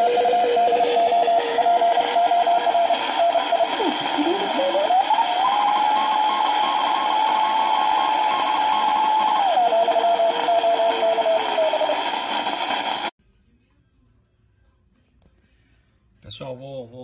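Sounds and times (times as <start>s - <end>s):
steady heterodyne whistle: 0.0s - 13.1s
radio band noise hiss: 1.4s - 13.1s.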